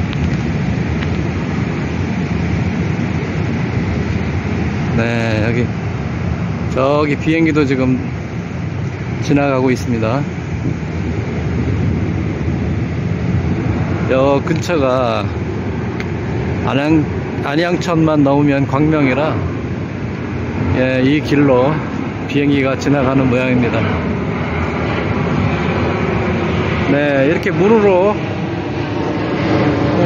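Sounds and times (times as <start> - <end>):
airplane rumble overhead: 0.0 - 30.0.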